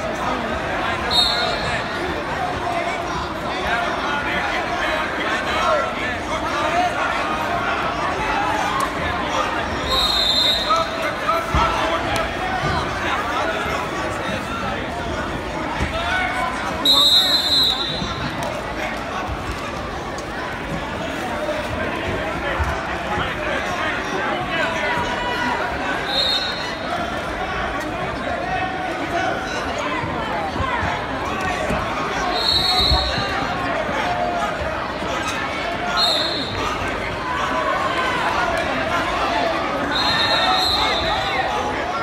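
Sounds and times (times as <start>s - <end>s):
people chatting: 0.0s - 42.0s
referee's whistle: 1.1s - 1.8s, 9.8s - 11.0s, 16.8s - 18.2s, 26.0s - 26.8s, 32.2s - 33.3s, 35.9s - 36.6s, 39.8s - 41.5s.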